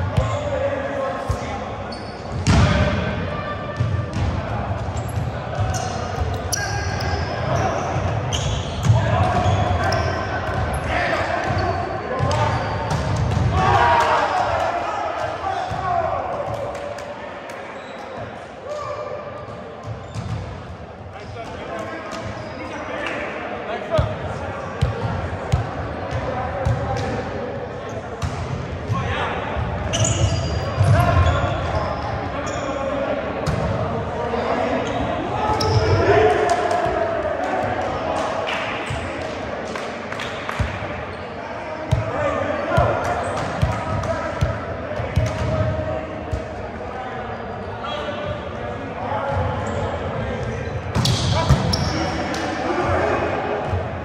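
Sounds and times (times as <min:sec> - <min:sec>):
players shouting: 0:05.6 - 0:17.0, 0:34.1 - 0:39.2.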